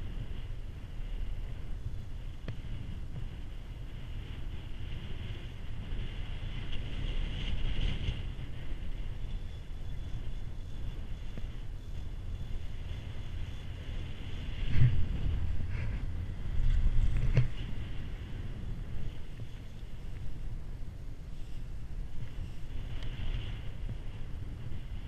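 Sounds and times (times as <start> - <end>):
chairlift low rumble: 0.0 - 25.0
wind on microphone: 0.0 - 25.0.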